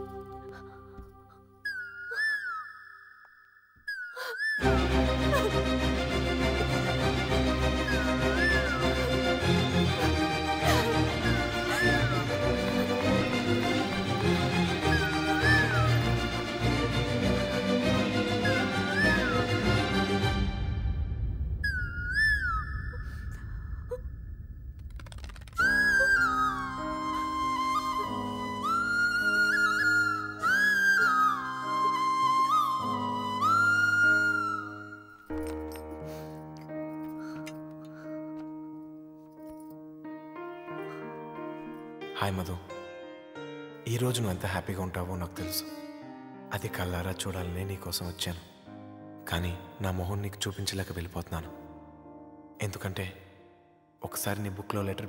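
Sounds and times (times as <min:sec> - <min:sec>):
flute melody over drone: 0:07.4 - 0:16.9, 0:17.9 - 0:20.2, 0:25.6 - 0:35.2
flute long note: 0:25.6 - 0:35.0.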